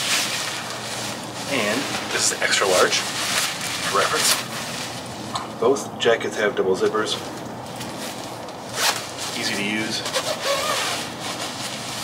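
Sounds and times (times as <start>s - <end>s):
fabric rustling: 0.0s - 5.4s, 7.2s - 12.0s
zipper pulled up: 8.7s - 9.1s, 10.0s - 12.0s.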